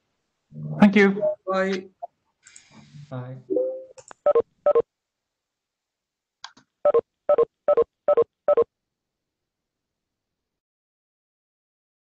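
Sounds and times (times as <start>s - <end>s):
short electronic beeps: 3.5s - 4.8s, 6.9s - 8.6s.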